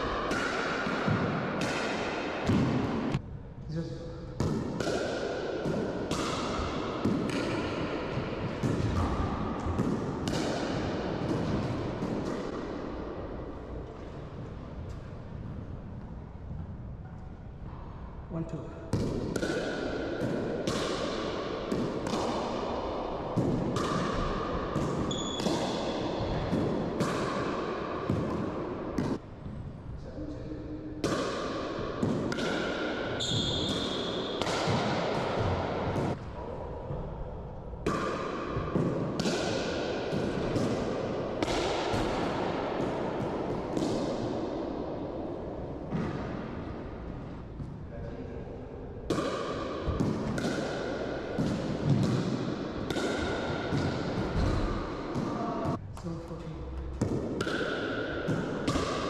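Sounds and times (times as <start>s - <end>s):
ball bouncing off floor and walls: 0.0s - 3.2s, 4.4s - 12.9s, 18.9s - 29.6s, 31.0s - 36.2s, 37.8s - 44.6s, 49.1s - 55.8s, 57.0s - 59.0s.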